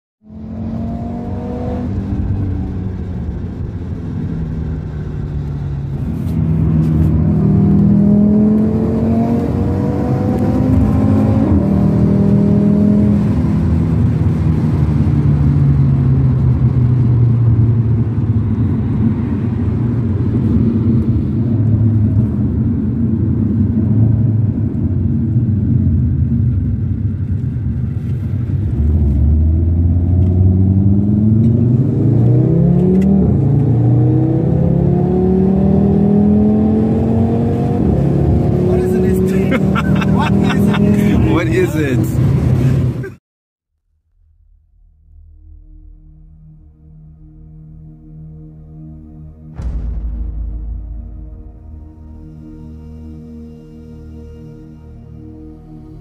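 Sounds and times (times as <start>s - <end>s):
car engine accelerating: 0.2s - 43.2s
tyre and road noise: 0.3s - 43.2s.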